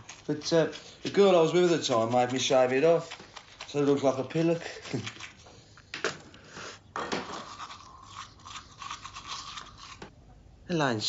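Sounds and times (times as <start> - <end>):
toothbrush scrubbing teeth: 0.0 - 5.7, 7.2 - 10.1.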